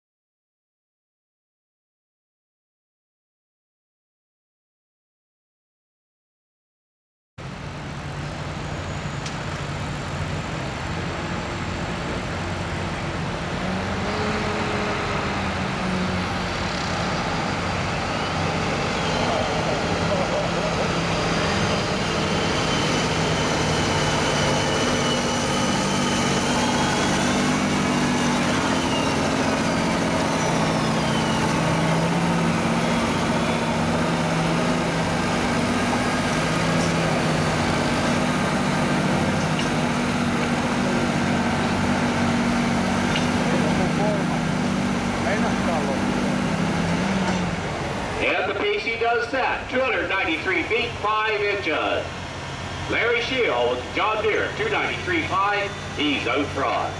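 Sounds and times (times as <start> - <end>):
tractor diesel engine under load: 7.4 - 56.9.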